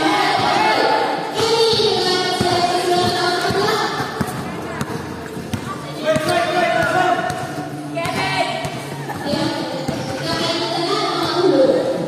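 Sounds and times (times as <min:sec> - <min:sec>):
basketball bouncing on court: 0:01.3 - 0:11.6.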